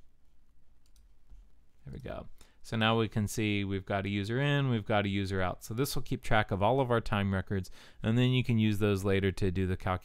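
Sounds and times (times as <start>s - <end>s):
faint computer mouse clicks: 0.8s - 1.1s.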